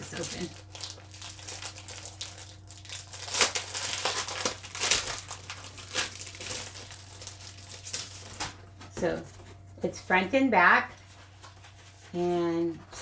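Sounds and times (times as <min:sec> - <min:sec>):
plastic wrapping crinkling and tearing: 0:00.0 - 0:08.7.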